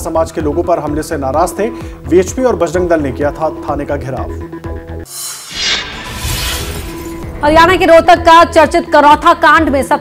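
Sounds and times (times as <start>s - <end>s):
news background music: 0.0s - 10.0s
crashing shattering sting: 5.1s - 7.5s.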